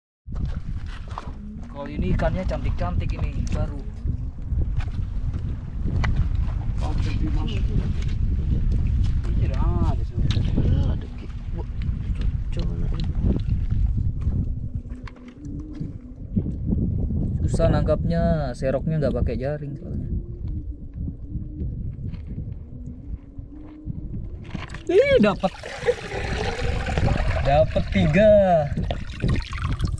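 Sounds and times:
wind buffeting microphone: 0.3 - 29.9
plastic colander in water: 25.1 - 29.9.

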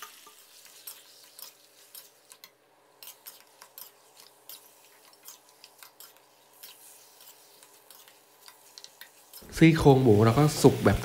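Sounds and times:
ladle scraping metal wok: 0.0 - 10.0.

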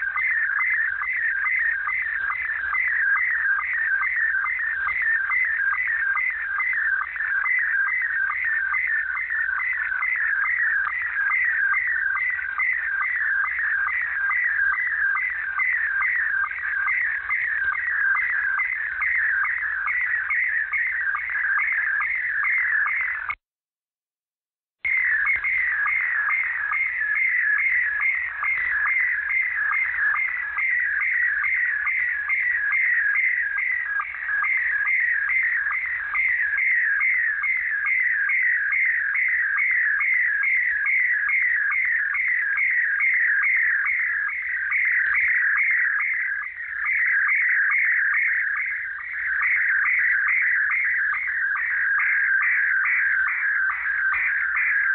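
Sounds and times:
electronic chirp tone: 24.8 - 54.9.

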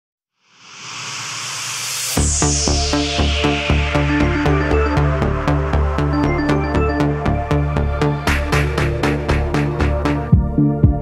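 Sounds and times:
synthesizer noise riser: 0.5 - 7.8.

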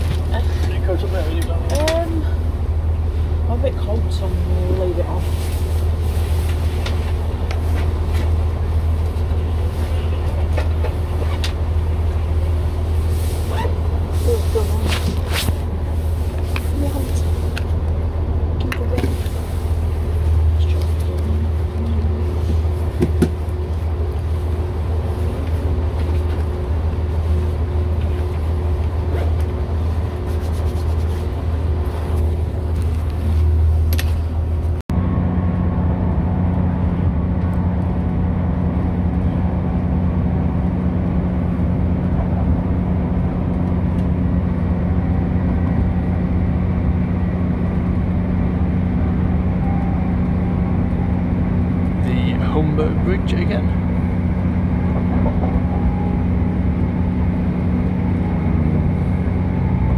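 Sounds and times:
engine and transmission drone: 0.0 - 59.9
train running rumble: 0.0 - 59.9.

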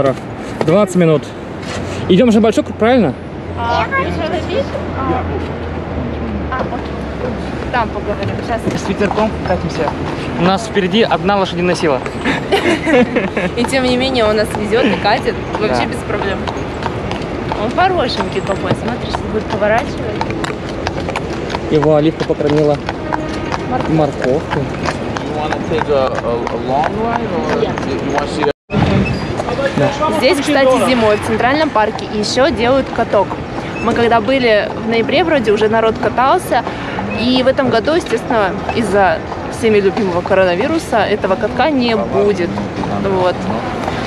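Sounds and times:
low road rumble: 0.0 - 44.0
indistinct voices: 2.9 - 44.0
horse hooves clip-clopping on asphalt: 6.6 - 44.0.

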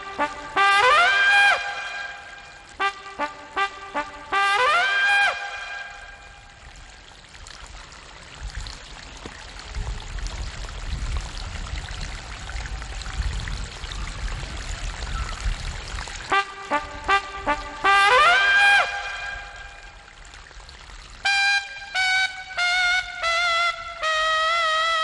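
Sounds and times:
brass music sting: 0.0 - 6.3, 16.3 - 20.0, 21.3 - 25.0.

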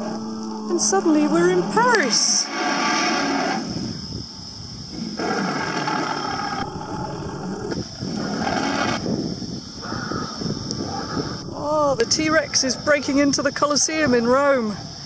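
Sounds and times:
animatronic dinosaur roaring: 4.9 - 9.0.

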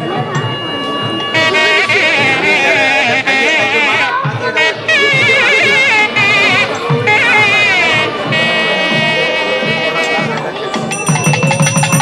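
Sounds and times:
wavering ornamented melody: 0.0 - 4.3, 10.9 - 12.0
drum beat: 1.4 - 12.0.

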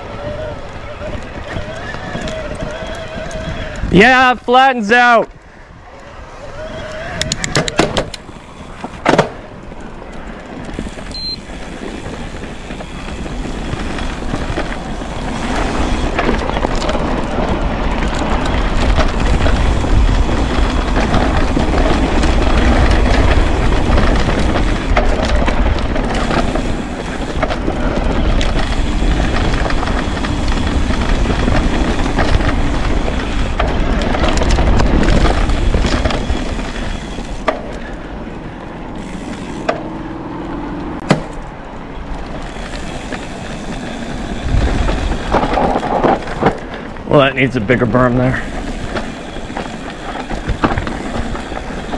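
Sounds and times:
tyres rolling on dirt: 0.0 - 5.3, 5.9 - 51.9
bike rattling over bumps: 0.0 - 51.9
wind buffeting microphone: 0.0 - 51.9.

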